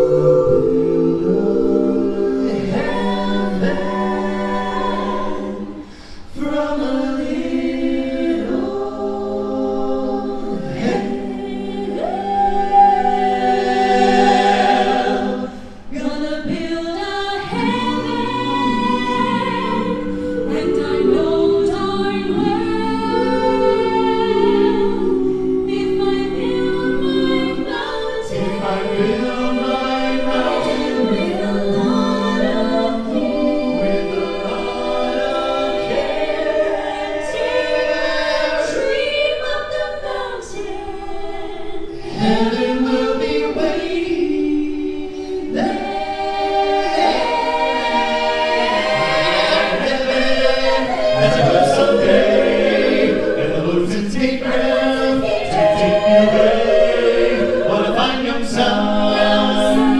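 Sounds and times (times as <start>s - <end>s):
a cappella group singing in harmony: 0.0s - 59.9s.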